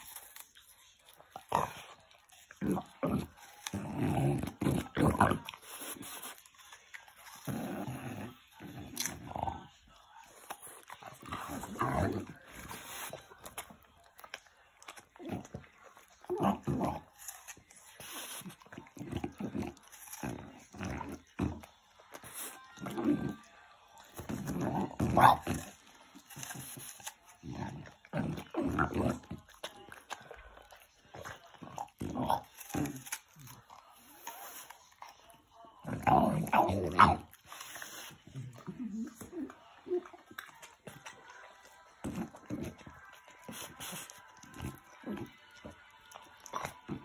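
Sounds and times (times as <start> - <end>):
dog eating an apple: 0.0 - 47.0.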